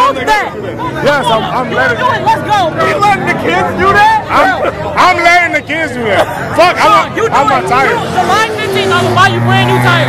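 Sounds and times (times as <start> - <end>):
car engine running: 0.0 - 10.0
crowd talking: 0.0 - 10.0.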